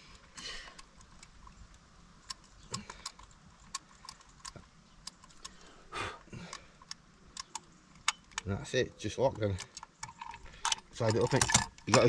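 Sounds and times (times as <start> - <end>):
lock box handled: 0.0 - 5.7, 6.5 - 8.5, 9.4 - 12.0.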